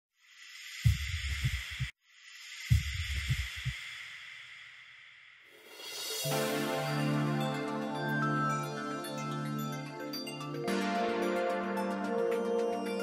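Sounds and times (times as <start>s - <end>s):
music: 5.6s - 13.0s.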